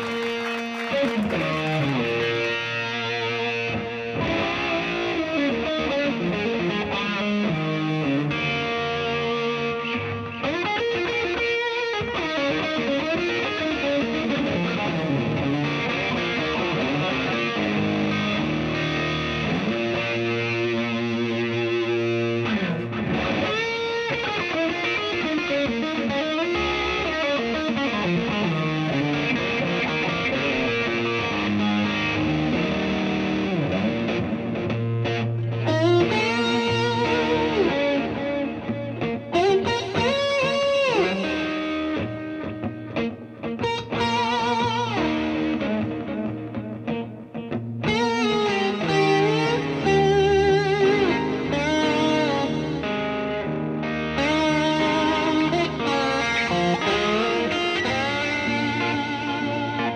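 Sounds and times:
bass guitar: 0:00.0 - 0:59.9
overdriven electric guitar solo: 0:00.0 - 0:59.9.

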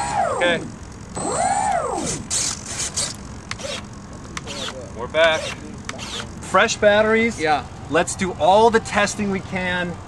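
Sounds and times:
electric motor whine: 0:00.0 - 0:07.4.

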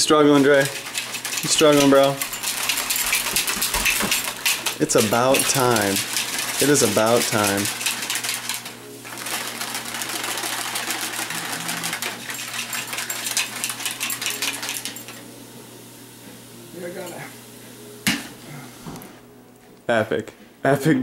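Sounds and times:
shaker bottle rattling: 0:00.0 - 0:15.2.

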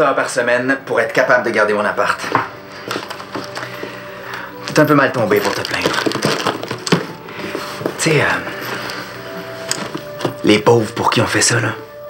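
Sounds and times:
person speaking: 0:04.6 - 0:06.6
food cans knocking: 0:05.2 - 0:07.2.

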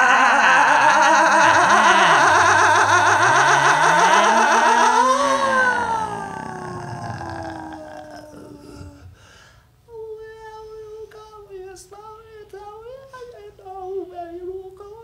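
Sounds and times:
wordless warbling vocals: 0:00.0 - 0:09.2.

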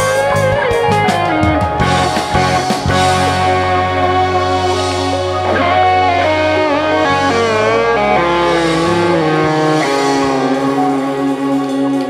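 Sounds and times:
bass: 0:00.0 - 0:12.0
drum kit: 0:00.0 - 0:12.0
electric guitars: 0:00.0 - 0:12.0.

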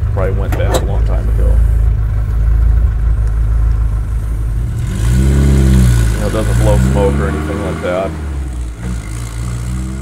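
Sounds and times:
pickup engine running: 0:00.0 - 0:09.8.

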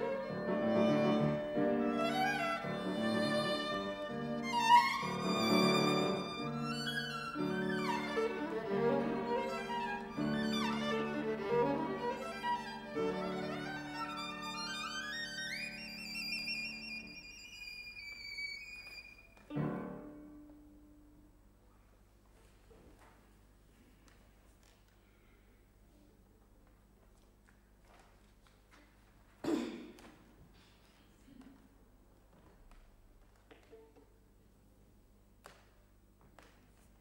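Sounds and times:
piano accompaniment: 0:00.0 - 0:17.2
solo violin: 0:00.0 - 0:20.4.

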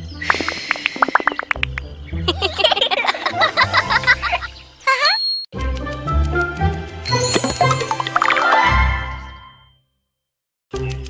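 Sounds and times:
theme music with twinkling chimes: 0:05.5 - 0:09.9
rising warbling chime: 0:07.1 - 0:09.7.

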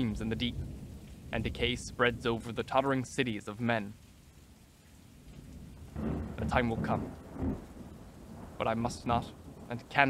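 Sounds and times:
steady rain: 0:00.0 - 0:10.0
low thunder-like rumble: 0:05.4 - 0:10.0.

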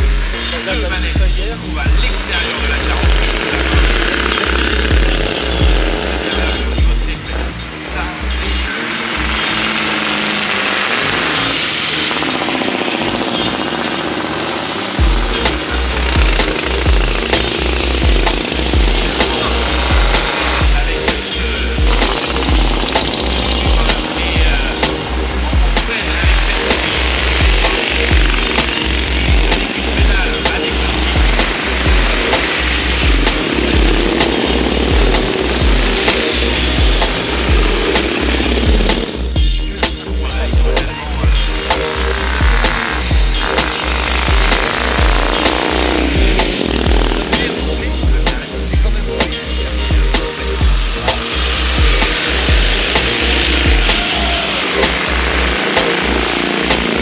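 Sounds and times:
steady low beat: 0:00.0 - 0:14.1, 0:14.9 - 0:57.0
background music: 0:00.0 - 0:57.0
race car engines passing: 0:00.0 - 0:57.0.

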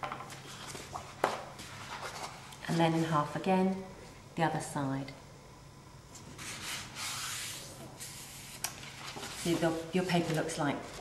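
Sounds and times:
paper folding and crease rubbing: 0:00.5 - 0:02.4, 0:06.2 - 0:11.0.

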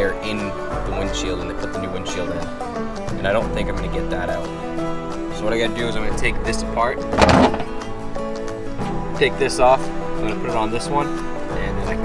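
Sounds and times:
acoustic guitar music: 0:00.0 - 0:12.0.

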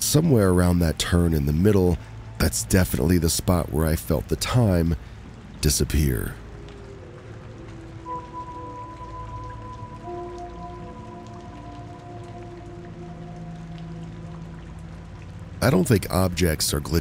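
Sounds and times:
ambient background music: 0:00.0 - 0:17.0
faint crackling noise: 0:00.0 - 0:17.0.

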